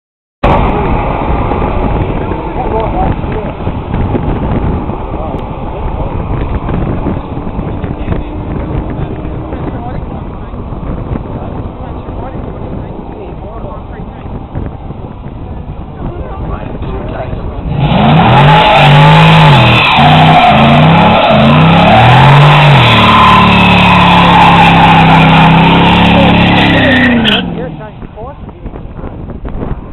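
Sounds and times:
car engine revving: 0.4s - 28.2s
tyres squealing: 17.8s - 27.6s.

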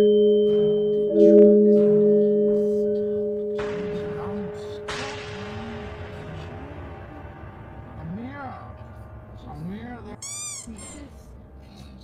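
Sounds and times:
person squealing: 10.2s - 11.0s.

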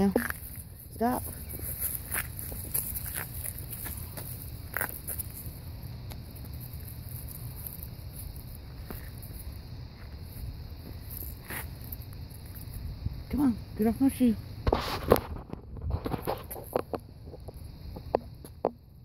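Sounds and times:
puppies scuffling on leaves: 0.0s - 5.6s.

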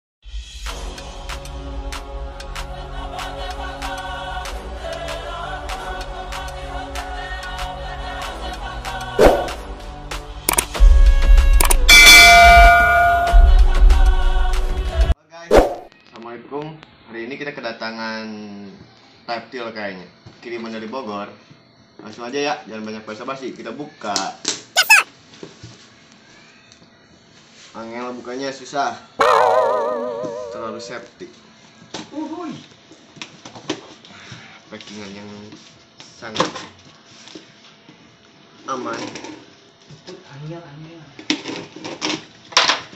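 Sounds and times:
bell chime ringing: 11.9s - 13.6s.

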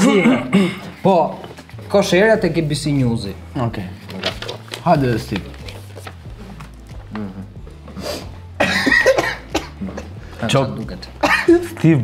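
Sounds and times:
man coughing: 0.0s - 0.9s, 8.6s - 10.2s, 11.2s - 11.7s.

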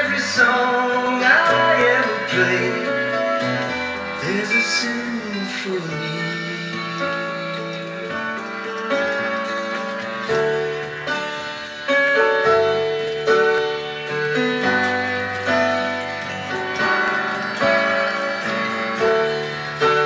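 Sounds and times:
electronic keyboard pop ballad: 0.0s - 20.0s.

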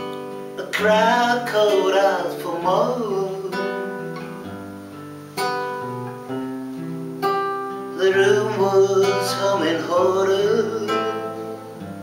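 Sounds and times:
acoustic guitar chords: 0.0s - 12.0s.

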